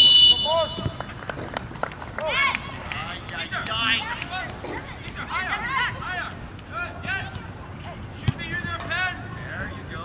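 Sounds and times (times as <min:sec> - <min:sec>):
soccer ball kick thud: 0:08.2 - 0:08.6.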